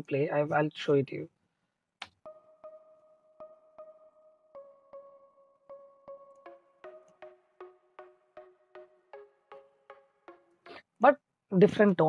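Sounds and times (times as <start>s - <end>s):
synthesizer plucked notes: 2.0s - 11.0s.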